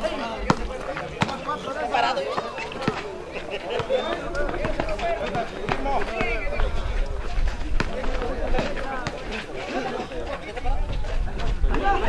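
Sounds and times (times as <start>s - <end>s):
people calling out: 1.4s - 7.0s
wind rumble on microphone: 10.5s - 12.0s.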